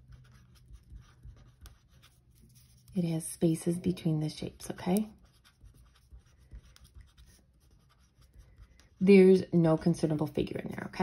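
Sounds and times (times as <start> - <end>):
marker scratching on paper: 0.0 - 9.4.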